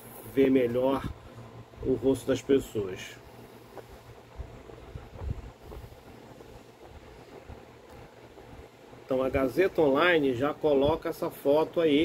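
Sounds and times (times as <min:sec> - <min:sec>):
steady low rumble: 0:00.0 - 0:11.4
soft low bumps: 0:03.7 - 0:08.0.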